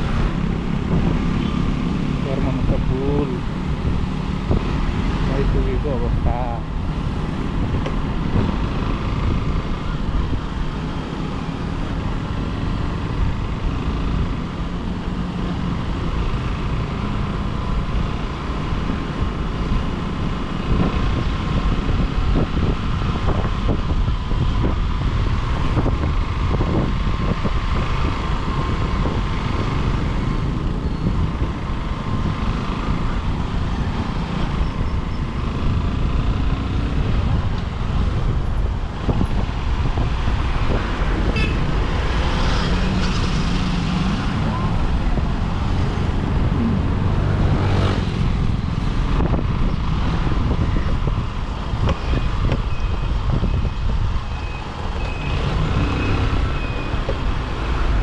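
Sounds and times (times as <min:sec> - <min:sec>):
passing vehicles: 0:00.0 - 0:58.0
wind rumbling on microphone: 0:00.0 - 0:58.0.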